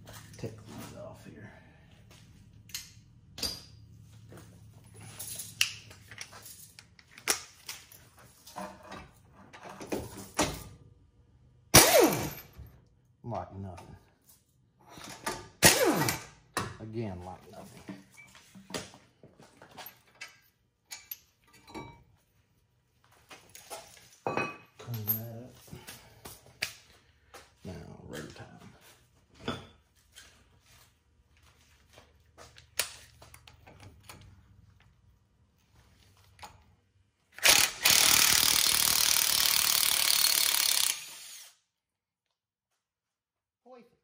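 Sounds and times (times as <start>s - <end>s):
metal tools clicking and knocking: 19.9s - 22.0s.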